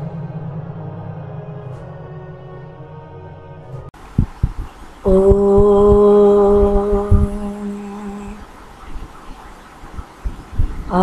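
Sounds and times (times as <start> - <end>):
soft low thumps: 4.0 - 8.4, 10.0 - 11.0
person chanting: 5.1 - 8.4.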